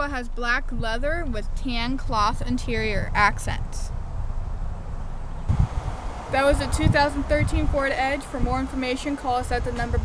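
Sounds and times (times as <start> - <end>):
wind buffeting microphone: 0.6 - 10.0.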